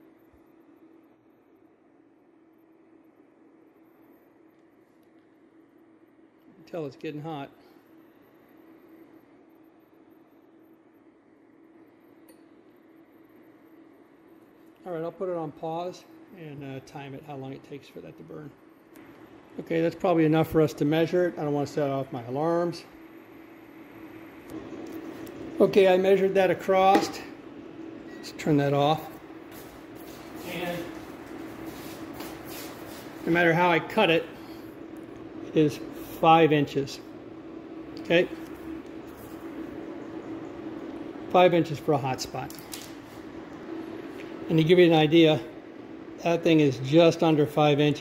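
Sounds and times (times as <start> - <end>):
induction cooktop hum: 0.0 - 48.0.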